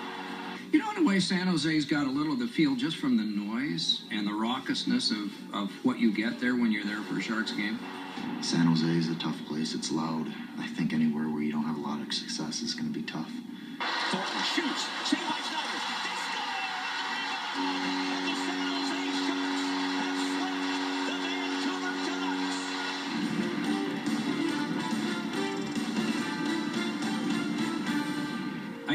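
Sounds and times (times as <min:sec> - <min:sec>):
arena crowd noise: 0:00.0 - 0:01.1, 0:07.0 - 0:10.5, 0:13.8 - 0:26.8
music with held chord: 0:17.5 - 0:28.9.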